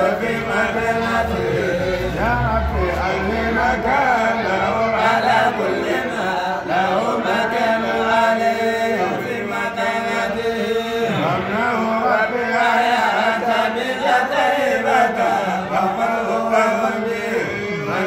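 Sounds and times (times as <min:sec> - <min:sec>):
low held vocal drone: 0:00.0 - 0:18.0
men chanting: 0:00.0 - 0:18.0.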